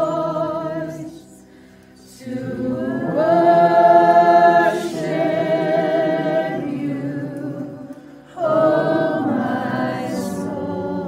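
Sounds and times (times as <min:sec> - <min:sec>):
women singing worship song: 0:00.0 - 0:11.0.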